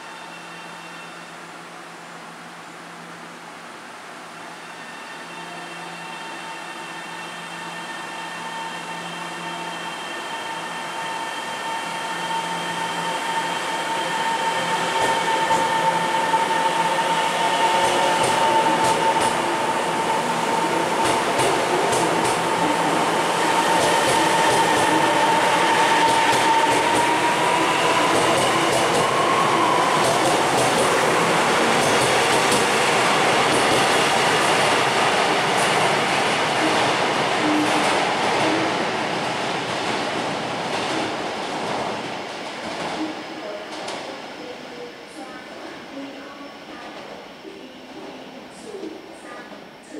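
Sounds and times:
electric train running: 9.4 - 38.7.

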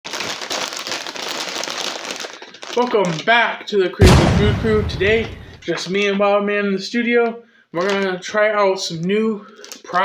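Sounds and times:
snack bags crinkling: 0.1 - 3.6, 7.8 - 8.2, 9.4 - 10.0.

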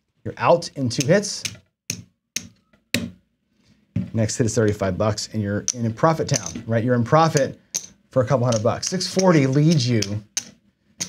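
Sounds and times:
casino chips clicking together: 5.6 - 6.6, 7.3 - 10.6.

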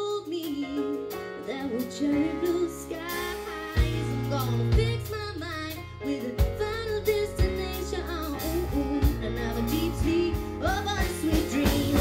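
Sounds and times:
bass guitar: 0.0 - 12.0
drum kit: 0.0 - 12.0
women singing: 1.5 - 12.0.

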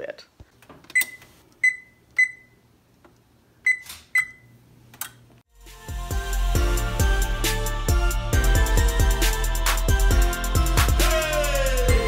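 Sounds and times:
oven keypad beeps: 0.9 - 2.6, 3.6 - 4.6
background music with a beat: 5.5 - 12.0.

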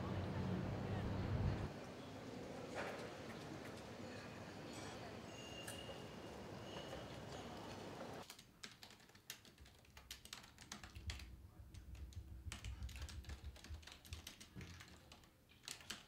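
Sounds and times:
typing on a keyboard: 7.3 - 16.0.

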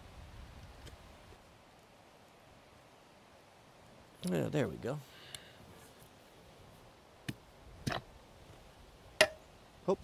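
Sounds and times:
sharp wooden knocks: 9.2 - 9.4.

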